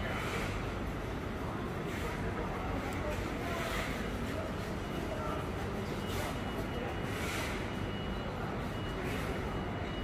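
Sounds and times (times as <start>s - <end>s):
street background noise: 0.0s - 10.0s.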